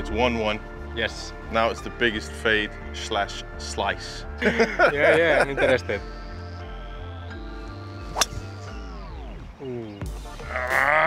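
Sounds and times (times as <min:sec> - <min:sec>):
background music: 0:00.0 - 0:11.0
golf club striking ball: 0:08.1 - 0:08.7.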